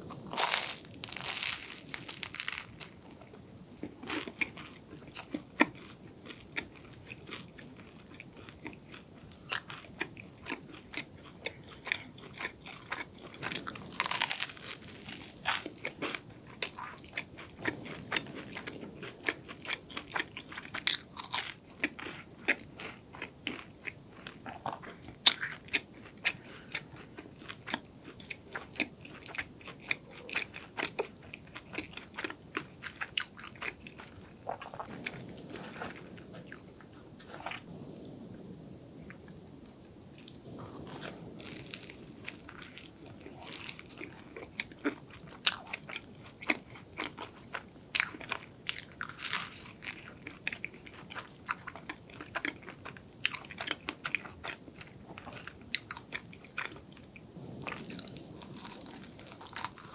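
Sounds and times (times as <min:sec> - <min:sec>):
crunchy bites: 0:00.0 - 0:36.7, 0:40.3 - 0:56.8, 0:57.4 - 0:59.9
chewing: 0:00.0 - 0:37.8, 0:39.1 - 0:59.9
crisp pastry crackling: 0:00.0 - 0:37.8, 0:39.3 - 0:59.9.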